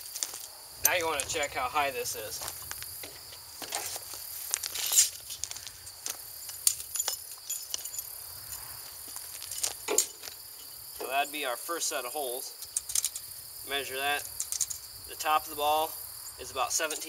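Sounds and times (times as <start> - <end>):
footsteps on gravel: 0.0 - 7.9, 8.7 - 10.4
insects chirping: 0.0 - 17.0
metal clicks and knocks: 9.8 - 10.3.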